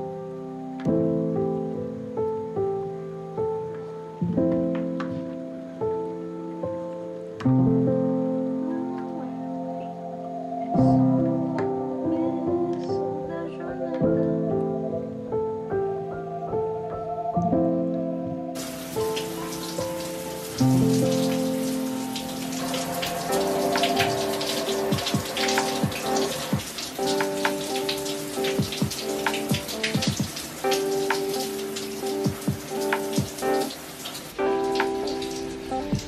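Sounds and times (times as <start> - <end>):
background music: 0.0 - 36.0
shower water running and splashing: 18.6 - 36.0.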